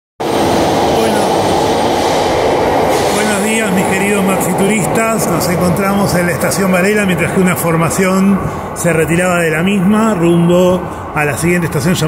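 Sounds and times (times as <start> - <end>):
train wheels rumbling on rails: 0.2 - 12.0
man talking: 0.9 - 1.4, 3.1 - 12.0.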